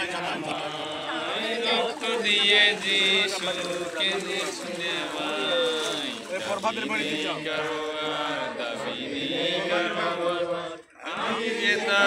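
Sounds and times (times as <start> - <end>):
voices chanting: 0.0 - 12.0.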